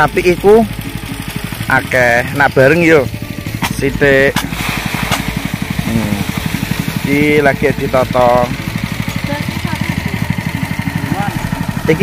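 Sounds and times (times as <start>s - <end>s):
small engine running: 0.0s - 12.0s.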